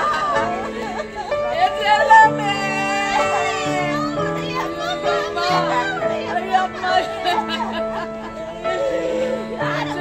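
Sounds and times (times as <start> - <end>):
women wailing and sobbing: 0.0 - 10.0.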